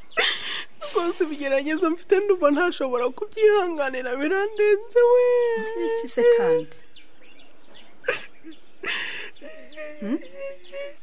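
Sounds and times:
faint bird chirps: 0:04.1 - 0:11.0.

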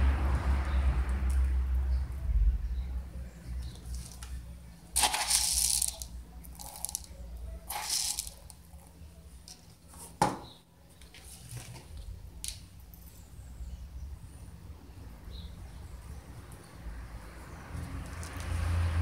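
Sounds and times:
fertilizer pellets rattling: 0:03.6 - 0:04.3, 0:04.9 - 0:09.6.

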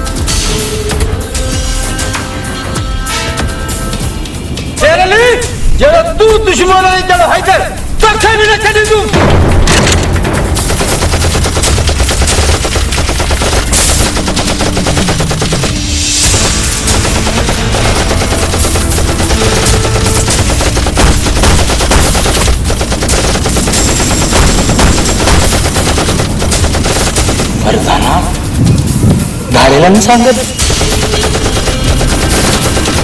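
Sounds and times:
automatic rifle fire: 0:09.2 - 0:27.7, 0:30.6 - 0:33.0.

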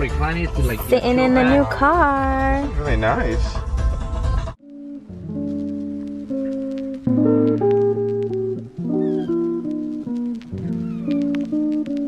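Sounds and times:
guitar music with sliding notes: 0:04.6 - 0:12.0.

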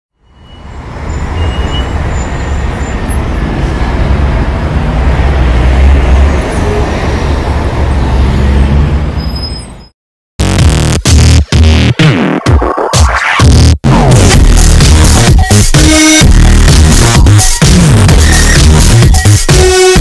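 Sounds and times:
city traffic rumble: 0:00.1 - 0:10.0.

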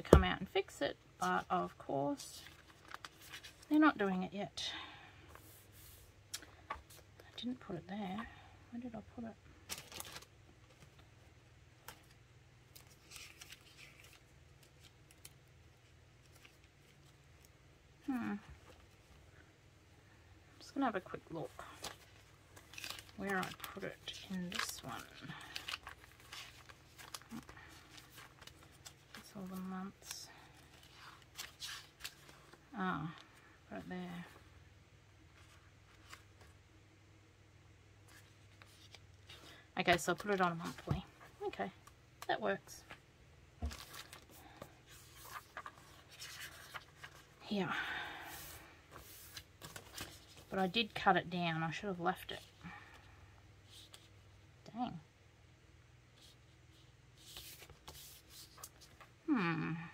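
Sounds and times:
low steady hum: 0:00.0 - 0:59.9
paper and plastic pack handling: 0:02.2 - 0:03.8, 0:09.6 - 0:11.1, 0:11.8 - 0:17.6, 0:21.0 - 0:32.6, 0:38.1 - 0:43.0, 0:43.6 - 0:47.4, 0:48.2 - 0:51.0.

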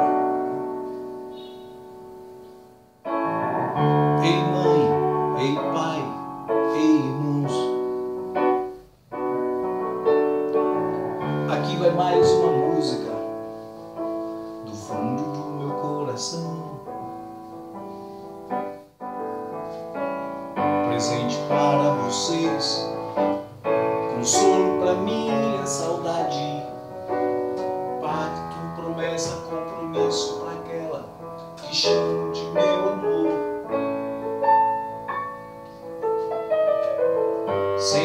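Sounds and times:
piano chords ringing: 0:00.0 - 0:38.0.

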